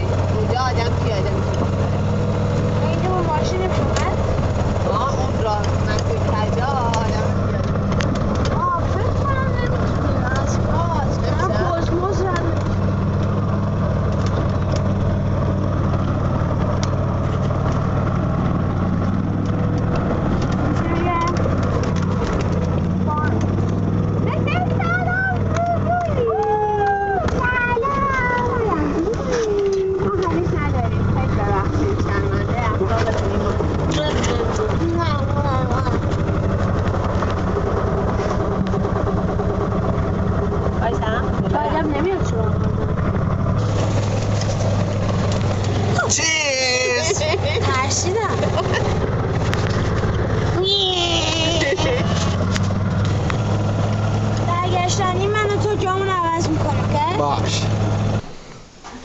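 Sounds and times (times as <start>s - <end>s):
people's voices: 0.0s - 15.5s, 20.6s - 39.8s, 40.6s - 52.6s
steady low drone: 28.0s - 58.2s.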